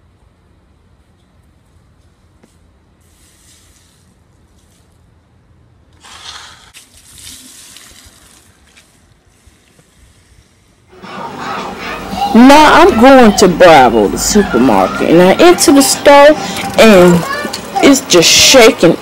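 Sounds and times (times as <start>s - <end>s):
bicycle tyres on wet pavement: 2.0s - 5.2s, 5.9s - 10.9s
splashy hiss: 3.0s - 4.2s, 6.0s - 8.6s.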